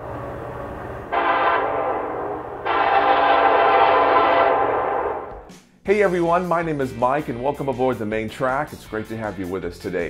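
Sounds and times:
locomotive air horn blasts: 1.1s - 5.4s.

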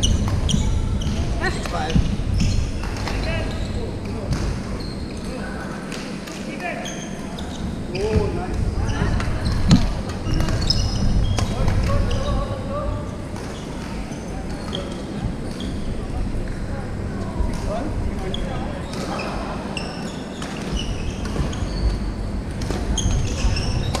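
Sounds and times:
shoes squeaking on wooden floor: 0.0s - 5.3s, 6.8s - 12.6s, 17.7s - 22.2s
players' voices: 0.0s - 24.0s.

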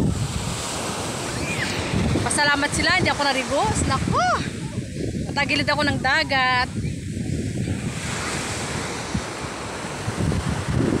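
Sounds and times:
ocean surf washing on beach: 0.0s - 11.0s
wind buffeting microphone: 0.0s - 11.0s.

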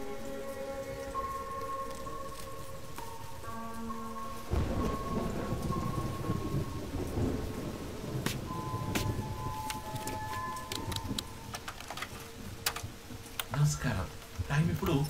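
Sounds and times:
held music tones: 0.0s - 15.0s.

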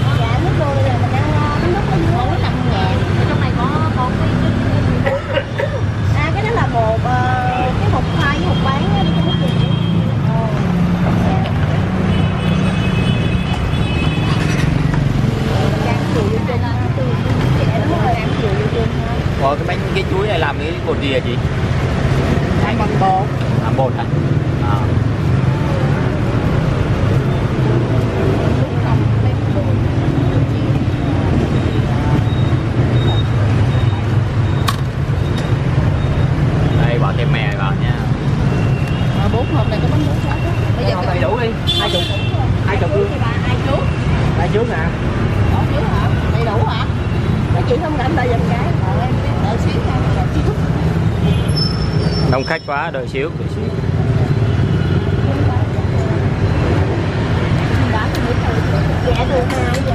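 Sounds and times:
people talking: 0.0s - 12.1s, 15.4s - 21.4s, 28.1s - 33.2s, 39.2s - 50.9s, 55.1s - 56.8s, 57.7s - 59.9s
street traffic rumble: 0.0s - 59.9s.

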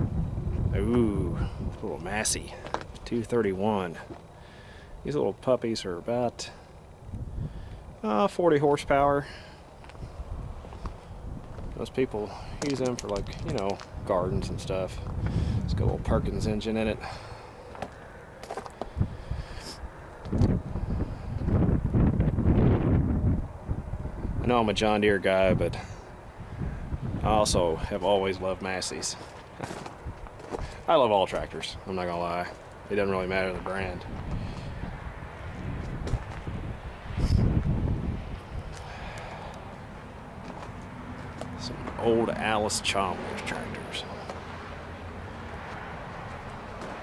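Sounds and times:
wind buffeting microphone: 0.0s - 4.1s, 6.9s - 8.0s, 9.8s - 17.3s, 18.8s - 40.7s.

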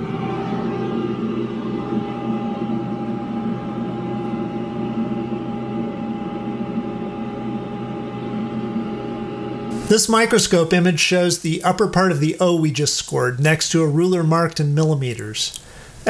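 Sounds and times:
faint steady whine: 0.0s - 16.0s
fan hum: 0.0s - 16.0s.

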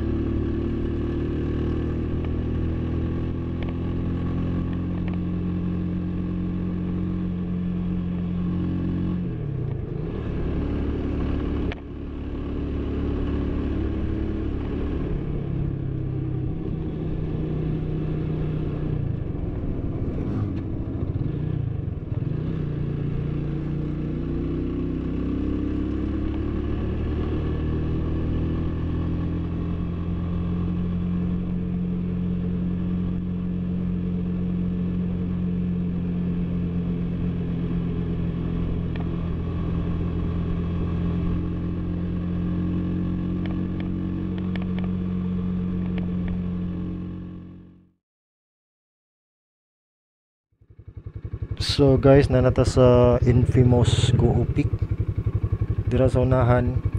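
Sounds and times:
motorcycle engine running: 0.0s - 48.0s, 50.5s - 56.9s.

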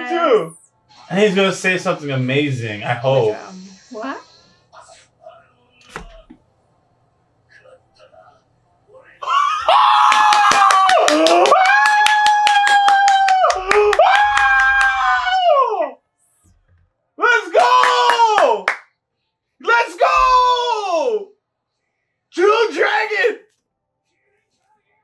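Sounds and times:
fast hand clapping: 10.0s - 15.0s.

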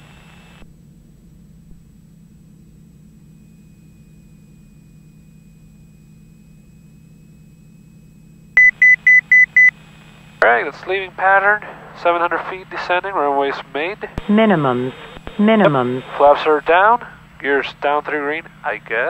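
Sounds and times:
airplane engine drone: 7.7s - 19.0s
short high-pitched beeps: 8.6s - 9.7s.

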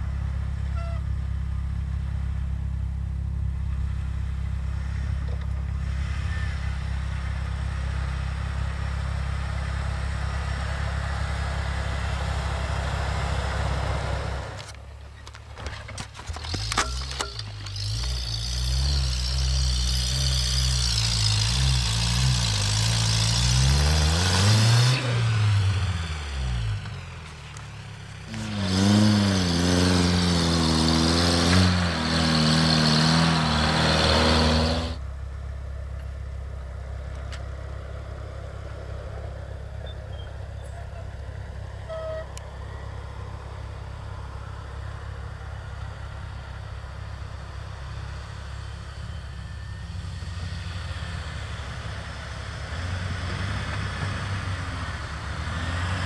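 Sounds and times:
off-road engine revving: 0.0s - 14.8s, 15.9s - 35.1s, 36.0s - 56.0s
low engine drone: 22.5s - 55.5s.

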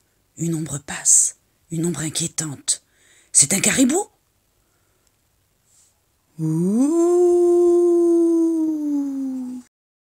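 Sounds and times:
person imitating wolf howl: 6.4s - 9.7s.

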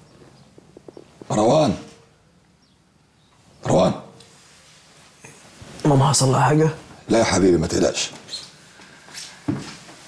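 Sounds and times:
rustling of bedding and clothes: 4.3s - 10.0s.

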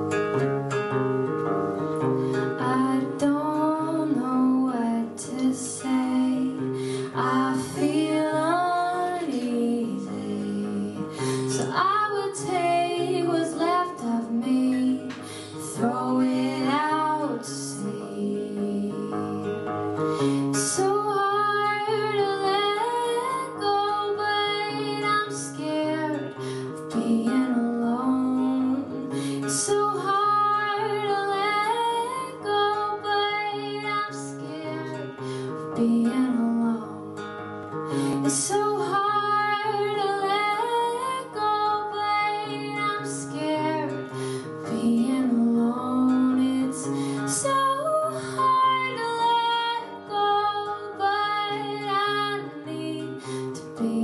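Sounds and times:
acoustic guitar strumming: 0.0s - 54.0s
woman singing: 2.4s - 54.0s.

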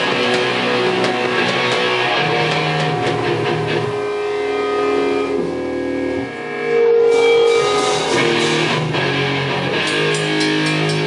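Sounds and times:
live rock band playing: 0.0s - 5.4s, 7.1s - 11.0s.

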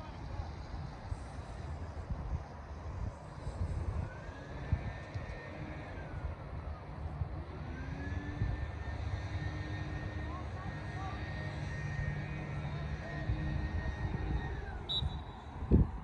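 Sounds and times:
constant low rumble: 0.0s - 16.0s
faint distant voices: 0.0s - 16.0s
high engine-like hum: 0.0s - 16.0s.

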